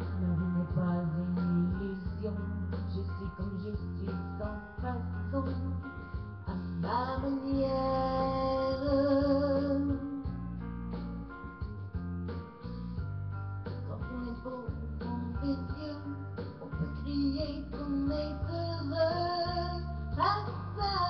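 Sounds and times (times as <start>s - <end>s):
woman singing into a microphone: 0.0s - 10.4s, 13.8s - 21.0s
plucked guitar backing track: 0.0s - 21.0s.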